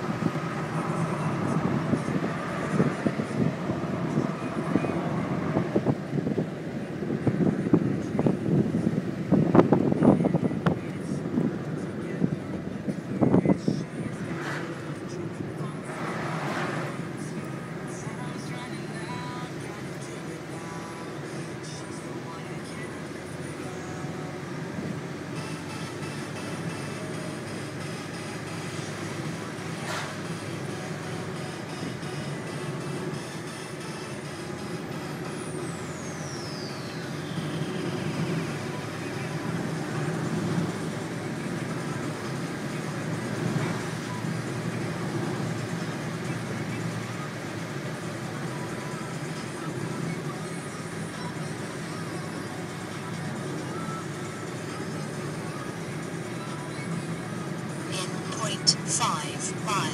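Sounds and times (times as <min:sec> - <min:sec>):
car cabin road rumble: 0:00.0 - 0:59.9.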